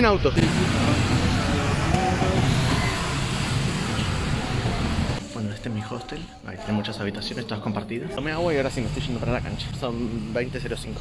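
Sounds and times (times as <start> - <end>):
road noise: 0.2 - 5.3.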